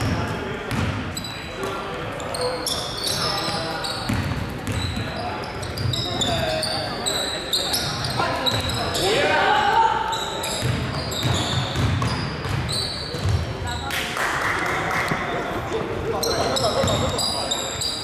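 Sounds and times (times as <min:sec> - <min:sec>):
sneakers squeaking: 0:00.0 - 0:14.0, 0:15.1 - 0:18.0
basketball bouncing on hardwood: 0:10.6 - 0:13.4.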